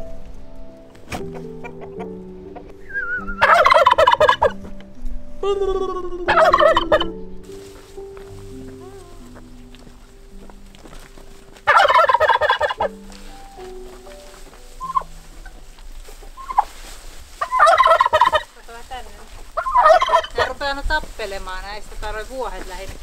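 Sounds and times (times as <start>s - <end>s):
turkey gobbling: 1.1s - 4.6s, 5.5s - 7.2s, 11.3s - 18.5s, 19.1s - 20.7s.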